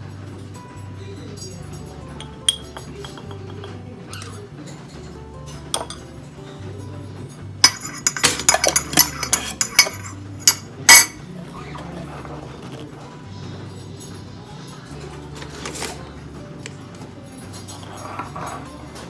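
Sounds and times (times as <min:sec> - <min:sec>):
background music: 0:00.0 - 0:19.0
spoon clinking in a ceramic mug: 0:01.4 - 0:04.4, 0:05.5 - 0:06.2, 0:07.6 - 0:11.2.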